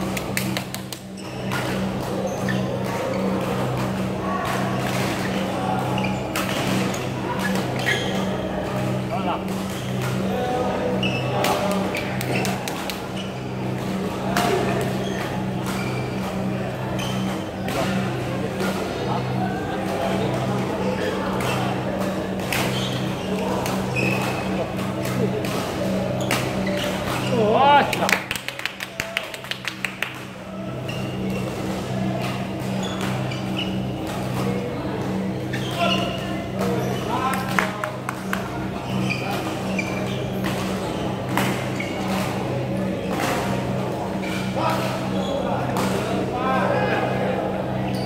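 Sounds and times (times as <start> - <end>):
rackets striking shuttlecocks: 0.0 - 2.2
court shoes squeaking: 0.0 - 48.0
players' voices: 0.0 - 48.0.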